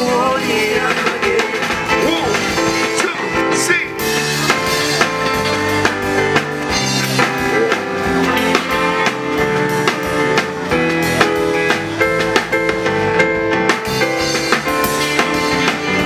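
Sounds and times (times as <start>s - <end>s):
drum kit steady beat: 0.0s - 16.0s
live rock band playing: 0.0s - 16.0s.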